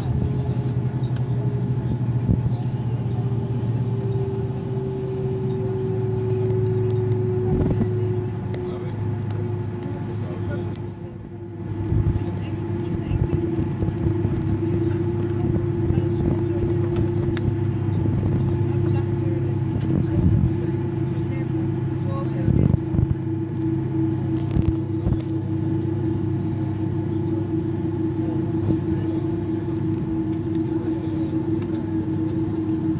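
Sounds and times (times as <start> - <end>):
jet engines idling in cabin: 0.0 - 32.9.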